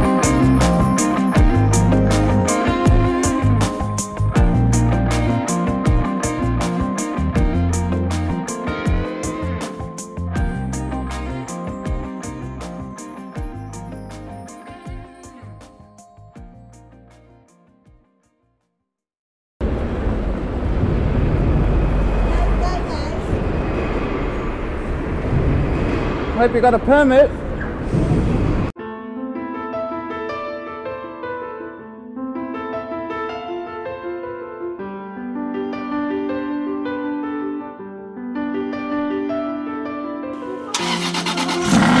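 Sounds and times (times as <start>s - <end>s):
soft piano music: 0.0s - 18.2s, 28.8s - 41.6s
traffic rumble: 19.6s - 28.7s
car engine starting and revving: 40.6s - 42.0s.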